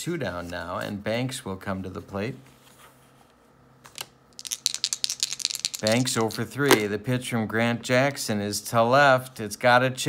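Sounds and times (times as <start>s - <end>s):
dice rattling in hand: 4.0s - 6.8s.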